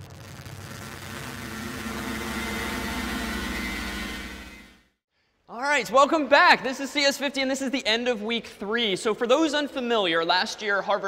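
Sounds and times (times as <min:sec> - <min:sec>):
static hiss: 0:00.0 - 0:04.8
electronic hum: 0:00.0 - 0:05.0.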